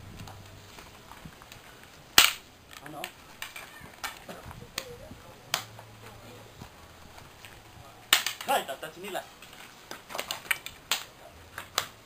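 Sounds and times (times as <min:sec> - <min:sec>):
sticks striking each other: 0:08.1 - 0:08.6.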